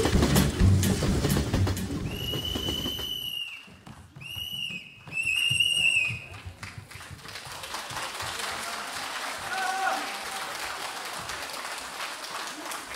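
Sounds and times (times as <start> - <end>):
shrill whistle blasts: 2.0 - 6.4.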